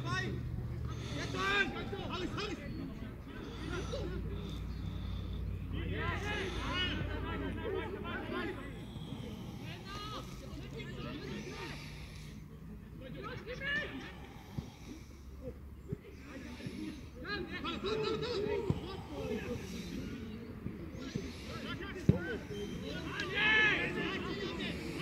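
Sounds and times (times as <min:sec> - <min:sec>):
distant shouts and calls: 0:00.0 - 0:25.0
open-air background: 0:00.0 - 0:25.0.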